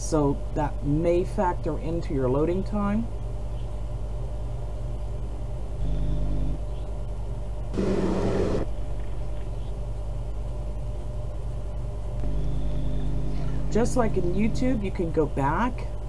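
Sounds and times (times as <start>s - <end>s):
low hum and rumble: 0.0s - 16.0s
burst of noise: 7.8s - 8.8s.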